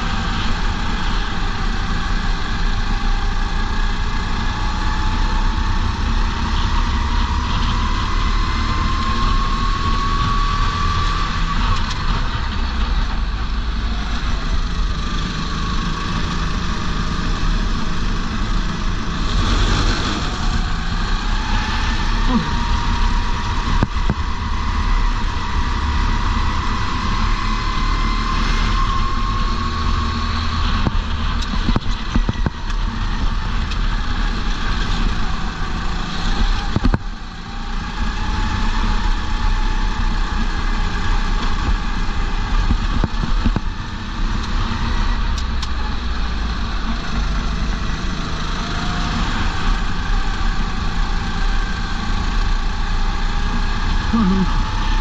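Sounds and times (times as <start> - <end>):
go-kart engine running hard: 0.0 - 55.0.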